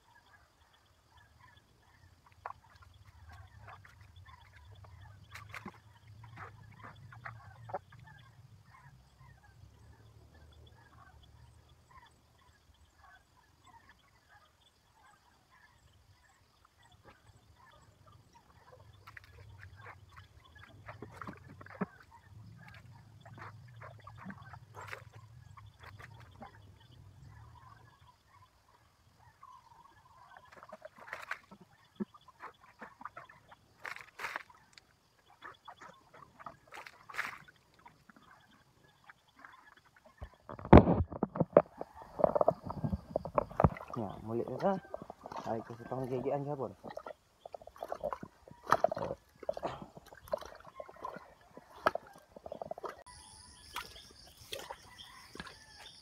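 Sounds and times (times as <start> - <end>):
water splashing: 1.8 - 8.2, 17.0 - 28.0, 29.6 - 56.0.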